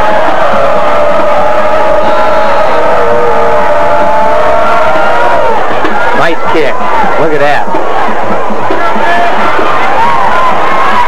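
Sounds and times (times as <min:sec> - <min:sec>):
crowd noise and cheering: 0:00.0 - 0:11.0.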